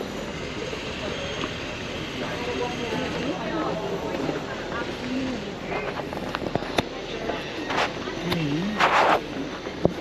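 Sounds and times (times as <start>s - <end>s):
chatter of passers-by: 0.0s - 10.0s
street hum: 0.0s - 10.0s.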